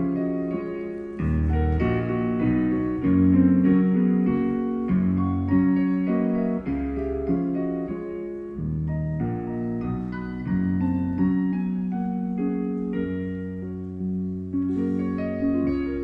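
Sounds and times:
piano chords over bass notes: 0:00.0 - 0:16.0.

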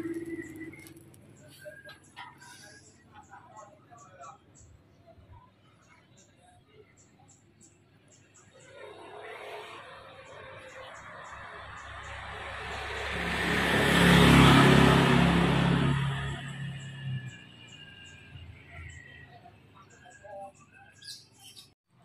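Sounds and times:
motor vehicle passing: 0:00.0 - 0:02.7, 0:08.5 - 0:19.4.

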